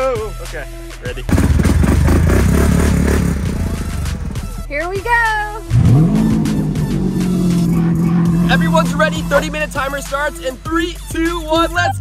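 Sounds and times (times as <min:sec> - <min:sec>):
atv engine running: 0:01.3 - 0:11.8.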